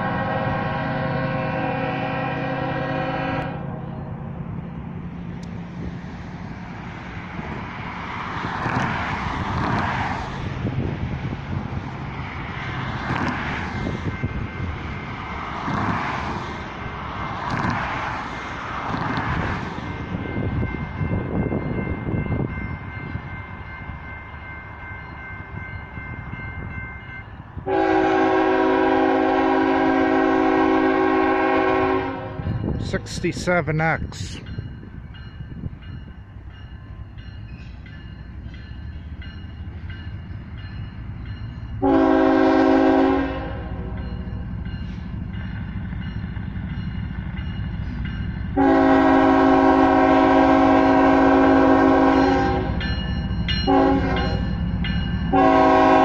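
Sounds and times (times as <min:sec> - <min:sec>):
locomotive horn blasts: 0:00.0 - 0:03.8, 0:27.6 - 0:32.6, 0:41.8 - 0:43.9, 0:48.6 - 0:52.8, 0:53.6 - 0:54.6, 0:55.3 - 0:56.0
rumbling traffic-like noise: 0:00.0 - 0:56.0.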